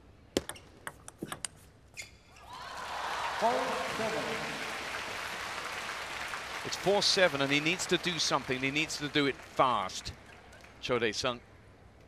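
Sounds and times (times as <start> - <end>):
crowd applauding and cheering: 2.4 - 10.8.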